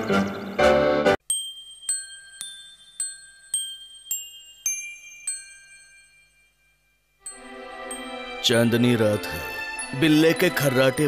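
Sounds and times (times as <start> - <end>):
bell-like chime melody: 1.2 - 11.0.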